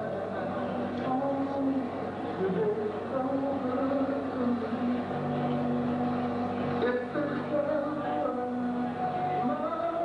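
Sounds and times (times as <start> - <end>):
music with held low notes: 0.0 - 10.0.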